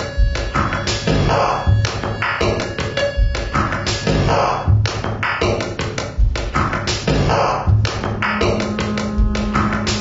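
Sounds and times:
rapid electronic clicks and taps: 0.0s - 7.1s, 7.7s - 10.0s
low thumps: 7.8s - 10.0s
steady low electronic tone: 7.9s - 10.0s.

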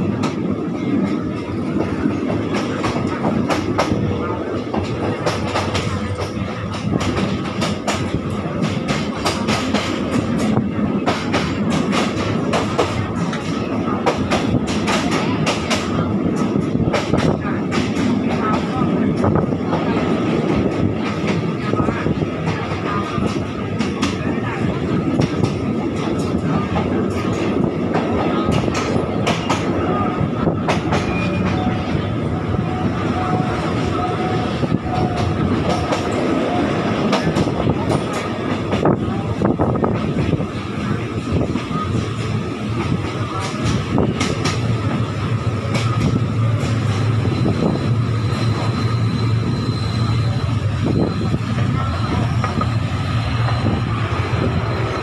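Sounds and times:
train wheels clicking over rail joints: 0.0s - 21.6s, 24.9s - 29.8s, 30.5s - 31.7s, 34.8s - 40.5s, 41.2s - 49.6s
faint thin squeal: 47.3s - 55.0s.

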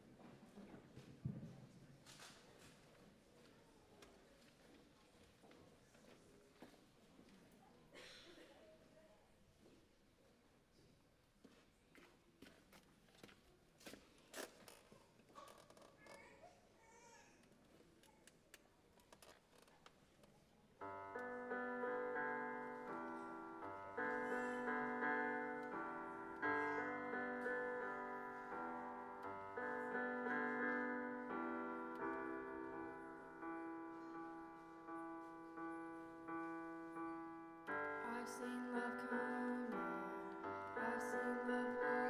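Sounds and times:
piano chords: 20.8s - 42.0s.

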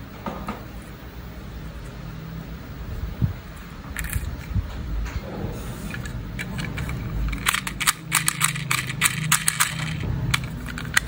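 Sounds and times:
low steady hum: 0.0s - 11.0s
plastic toy clicks and taps: 6.8s - 11.0s.

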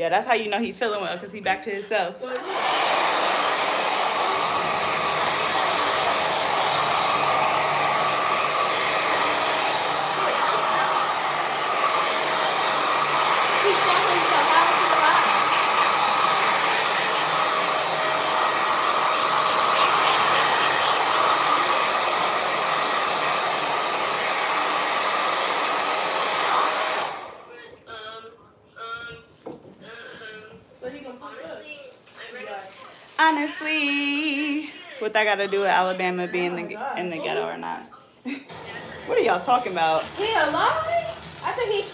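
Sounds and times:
hair dryer blowing with whine: 2.3s - 27.5s, 38.5s - 41.9s.

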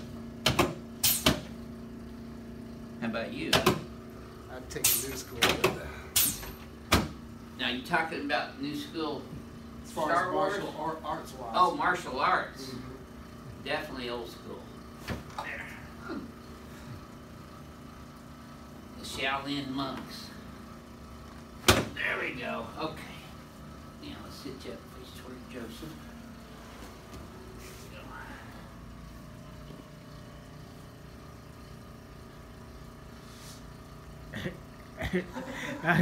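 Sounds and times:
low machine hum: 0.0s - 36.0s.

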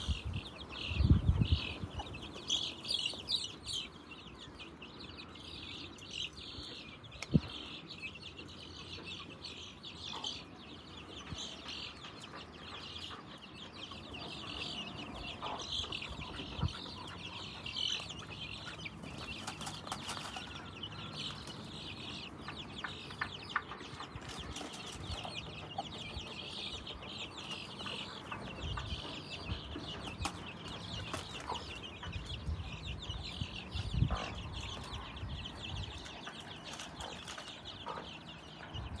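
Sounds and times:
chicks peeping: 0.0s - 39.0s.

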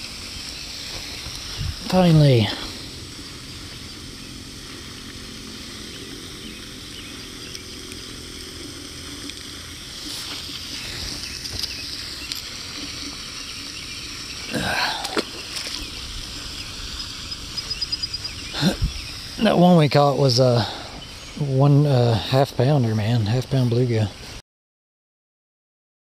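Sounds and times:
water noise: 0.0s - 24.4s.

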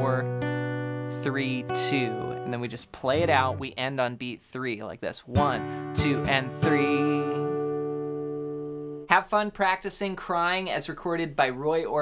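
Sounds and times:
acoustic guitar chord ringing: 0.2s - 3.6s, 5.4s - 9.1s.

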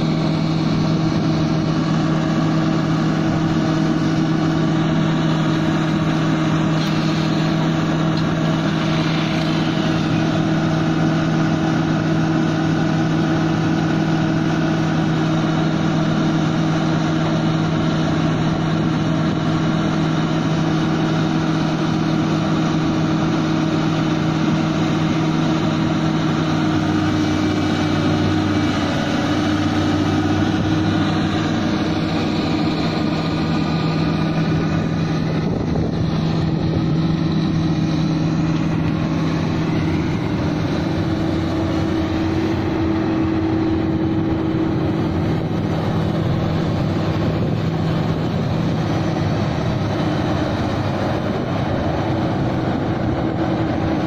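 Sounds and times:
excavator diesel engine running: 0.0s - 54.0s.

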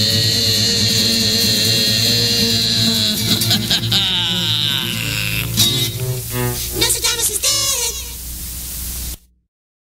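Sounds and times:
steady hiss: 0.0s - 9.3s
low mains hum: 0.0s - 9.4s.

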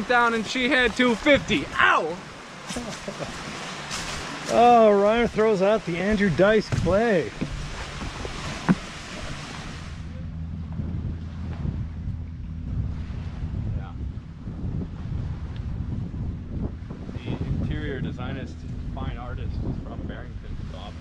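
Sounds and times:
low steady hum: 0.0s - 21.0s
wind buffeting microphone: 0.0s - 21.0s.

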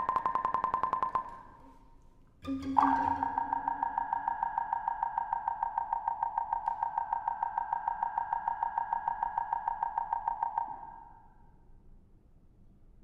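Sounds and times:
pulsing high synthesizer tone: 0.0s - 1.4s, 2.5s - 11.2s.

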